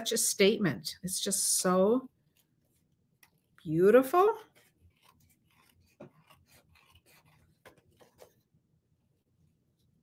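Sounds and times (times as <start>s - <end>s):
scissors cutting paper: 4.0s - 8.5s.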